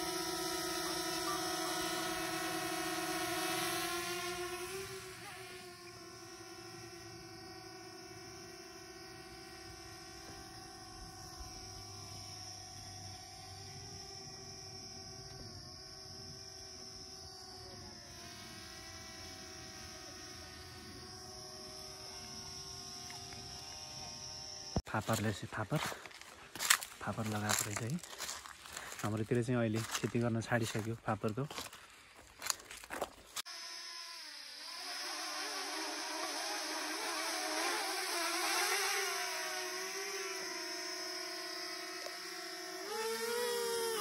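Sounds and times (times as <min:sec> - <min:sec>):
drone propellers buzzing: 0:00.0 - 0:31.7, 0:32.4 - 0:44.0.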